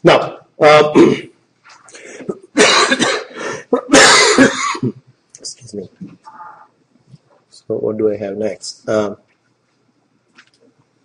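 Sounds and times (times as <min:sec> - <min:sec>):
man clearing his throat: 0:00.9 - 0:01.3, 0:02.4 - 0:05.0
man coughing: 0:01.0 - 0:01.3, 0:02.5 - 0:05.0.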